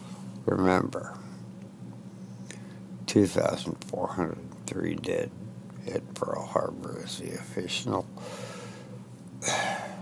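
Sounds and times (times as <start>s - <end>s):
man breathing in: 8.2s - 10.0s.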